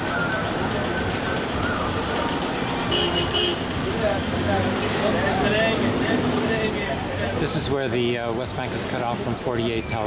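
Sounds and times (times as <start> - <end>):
people's voices: 0.0 - 10.0
road traffic: 0.0 - 10.0
car horn toots: 2.9 - 3.6.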